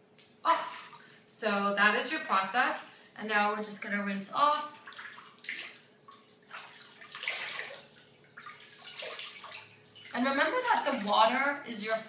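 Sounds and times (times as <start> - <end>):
hands splashing water in basin: 4.5 - 12.0.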